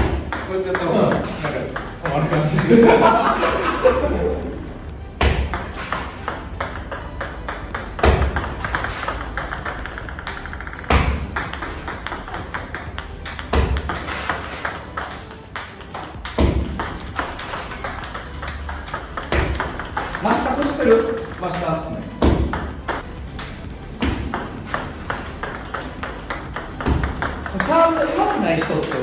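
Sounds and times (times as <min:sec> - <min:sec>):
ball bouncing lightly: 0:00.0 - 0:02.7, 0:04.9 - 0:29.0
table tennis ball clicking: 0:00.0 - 0:02.7, 0:05.4 - 0:29.0.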